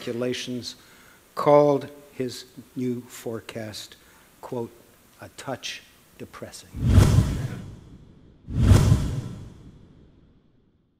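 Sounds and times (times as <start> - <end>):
deep whoosh: 6.8 - 10.1.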